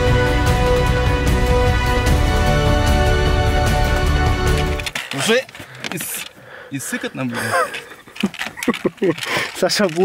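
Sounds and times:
background music: 0.0 - 5.1.

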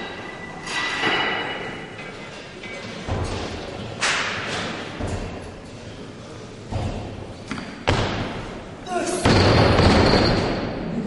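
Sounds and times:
gym hall background noise: 0.0 - 11.0.

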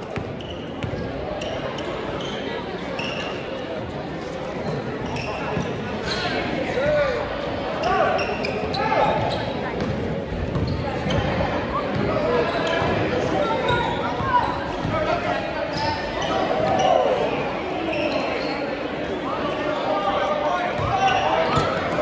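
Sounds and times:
sneakers squeaking: 0.0 - 7.1, 7.8 - 19.2, 20.6 - 22.0
crowd and player voices: 0.0 - 22.0.

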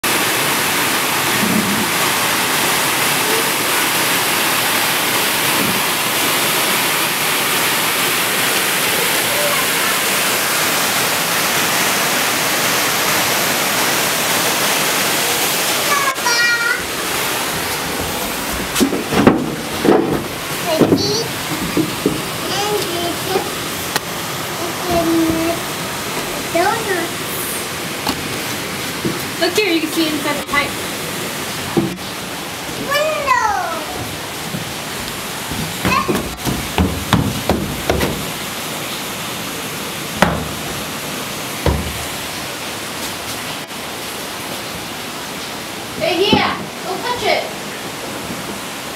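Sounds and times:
waterfall rushing: 0.0 - 48.9.

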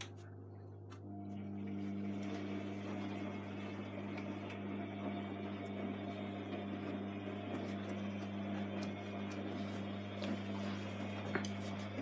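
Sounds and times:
washing machine humming: 0.0 - 12.0.

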